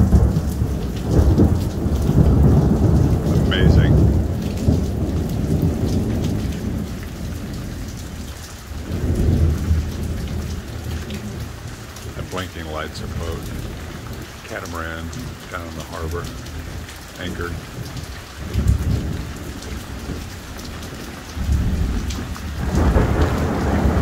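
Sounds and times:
heavy rain hissing: 0:00.0 - 0:24.0
thunder rumbling: 0:00.0 - 0:24.0.

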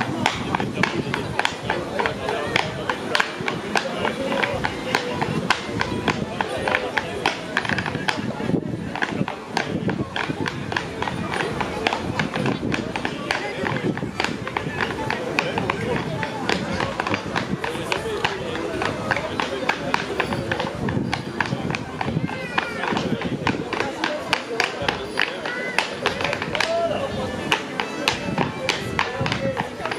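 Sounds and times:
fiddle-led dance tune: 0:00.0 - 0:29.9
wooden clogs tapping on floor: 0:08.9 - 0:29.9.

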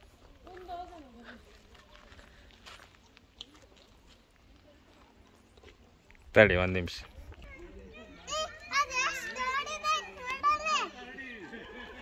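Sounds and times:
young children speaking: 0:07.4 - 0:11.0.

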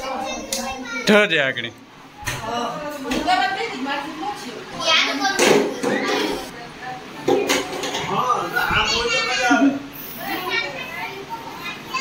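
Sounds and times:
children's voices: 0:00.0 - 0:01.2, 0:04.7 - 0:06.6, 0:08.6 - 0:12.0
people talking in a room: 0:00.0 - 0:12.0.

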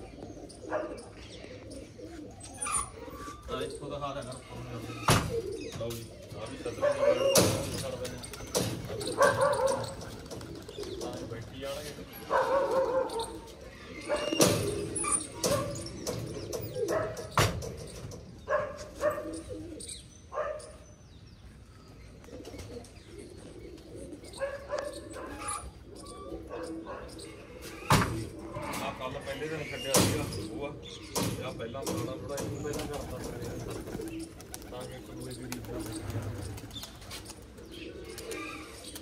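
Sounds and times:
pigeons cooing: 0:00.0 - 0:39.0.

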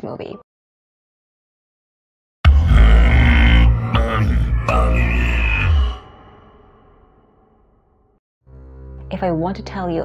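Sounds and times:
deep film-score drone: 0:02.5 - 0:07.4.

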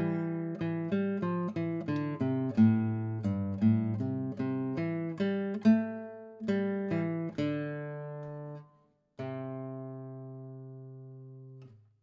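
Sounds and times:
classical guitar notes plucked: 0:00.0 - 0:11.9.

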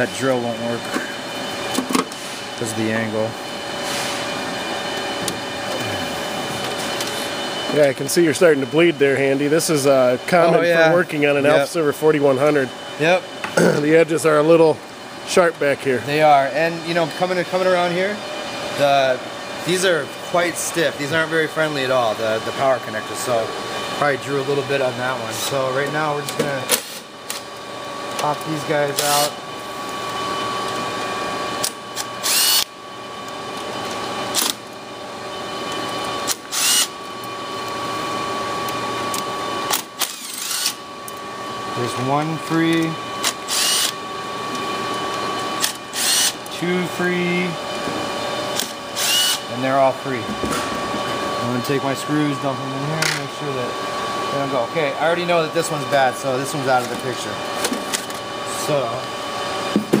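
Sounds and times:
steady background hum: 0:00.0 - 1:00.0
cordless drill removing screws: 0:31.6 - 0:32.7, 0:36.2 - 0:37.0, 0:39.7 - 0:40.8, 0:43.2 - 0:44.0, 0:45.6 - 0:46.5, 0:48.5 - 0:49.4.

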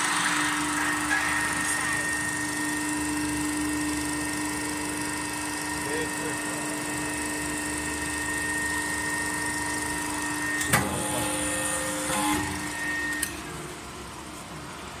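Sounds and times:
machine humming: 0:00.0 - 0:15.0.

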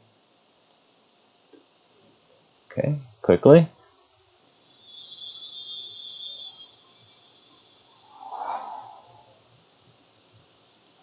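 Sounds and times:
shimmering chime: 0:04.1 - 0:09.4
short whoosh: 0:08.0 - 0:09.5.

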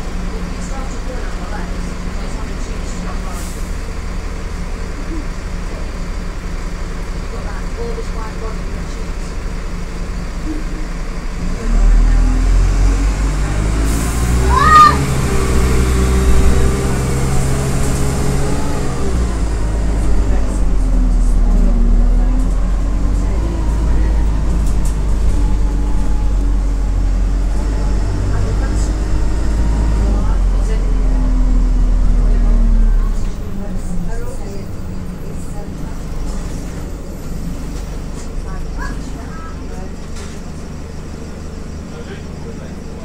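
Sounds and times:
diesel bus engine under load: 0:00.0 - 0:43.0.

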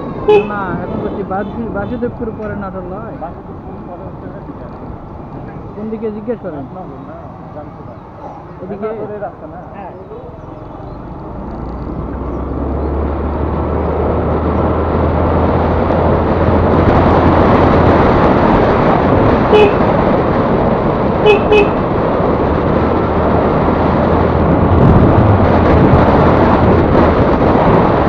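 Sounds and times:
wind and road noise: 0:00.0 - 0:28.0
horn beeps: 0:19.5 - 0:19.9, 0:21.3 - 0:21.8.

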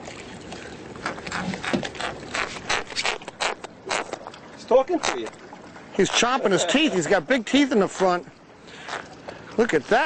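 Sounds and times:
fish teeth clicking and scraping: 0:01.0 - 0:04.3, 0:05.0 - 0:05.4.

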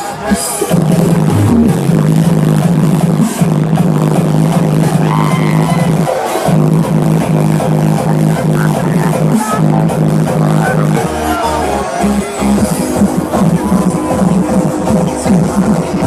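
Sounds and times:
loud hardstyle dance music: 0:00.7 - 0:16.0.

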